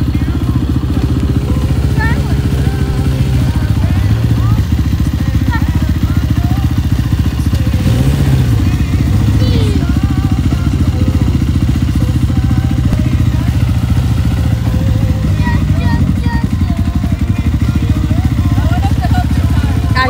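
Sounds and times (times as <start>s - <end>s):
faint voices: 0.0s - 20.0s
vehicle engine idling: 0.0s - 20.0s.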